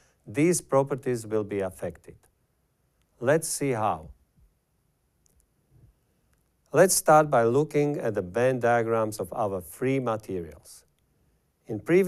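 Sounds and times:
faint click: 0:03.0 - 0:03.2, 0:05.2 - 0:05.6, 0:06.3 - 0:06.7.

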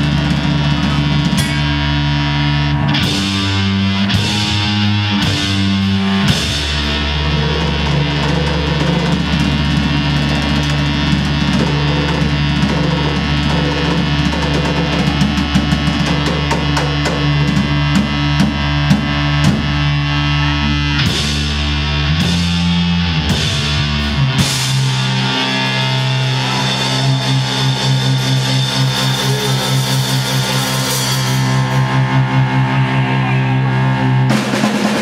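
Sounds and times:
drum kit: 0:00.0 - 0:35.0
electric guitar chords: 0:00.0 - 0:35.0.

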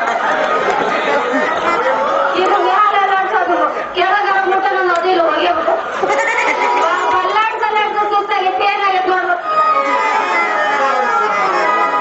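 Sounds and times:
loud overlapping talking: 0:00.0 - 0:12.0.

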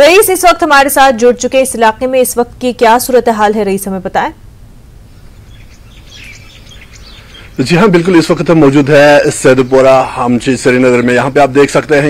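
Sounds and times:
small birds chirping: 0:05.0 - 0:11.8.

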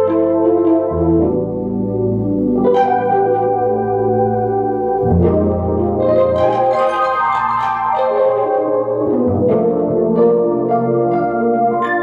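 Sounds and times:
bass notes: 0:00.0 - 0:12.0.

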